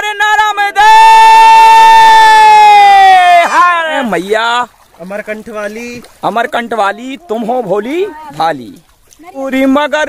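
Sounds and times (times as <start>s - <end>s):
man shouting a drawn-out cheer: 0.0s - 4.2s.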